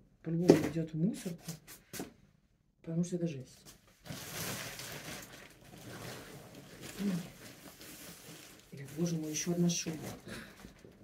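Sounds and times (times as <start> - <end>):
fabric rustling and shuffling: 3.7 - 11.0.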